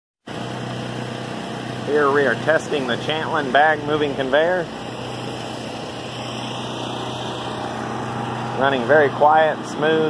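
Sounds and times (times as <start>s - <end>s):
belt conveyor humming: 0.3s - 10.0s.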